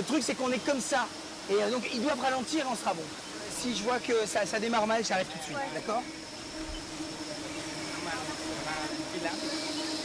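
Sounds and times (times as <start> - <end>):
steady high whine: 0.0 - 10.0.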